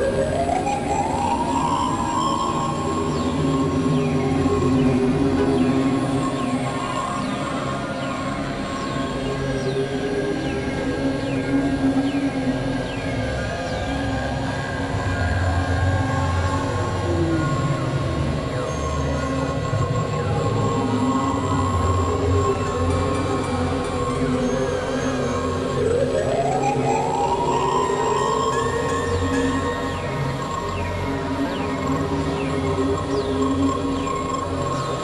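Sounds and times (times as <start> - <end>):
low electronic drones: 0.0 - 35.0.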